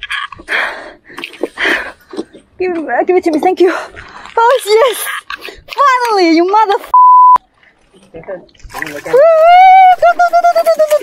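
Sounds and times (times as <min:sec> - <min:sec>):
person panting: 0:00.4 - 0:02.3.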